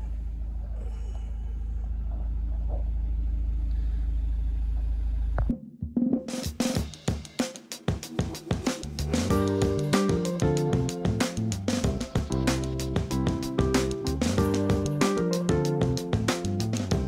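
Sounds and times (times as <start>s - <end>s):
van engine rumbling: 0.0s - 5.5s
music with drum beat: 5.5s - 17.0s.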